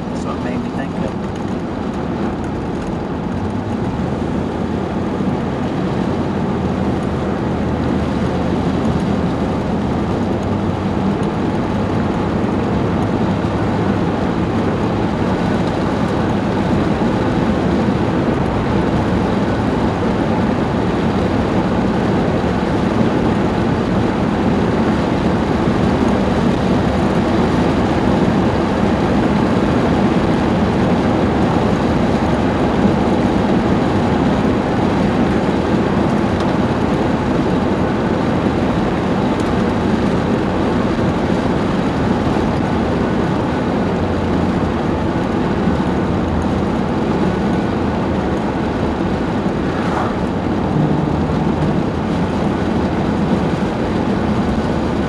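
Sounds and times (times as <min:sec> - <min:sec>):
car engine low rumble: 0:00.0 - 0:55.0.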